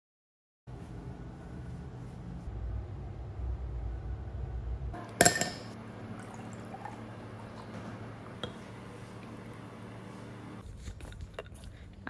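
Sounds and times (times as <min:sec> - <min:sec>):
low rumble: 0:00.8 - 0:05.0.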